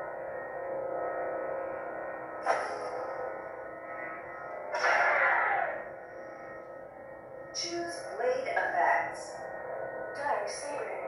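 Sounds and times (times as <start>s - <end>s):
lightsaber hum: 0.0s - 11.0s
lightsaber swing falling in pitch: 4.7s - 5.8s.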